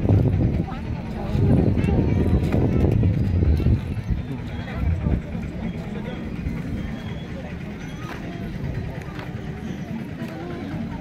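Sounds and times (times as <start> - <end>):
loud uneven low rumble: 0.0 - 11.0
people talking in background: 0.0 - 11.0.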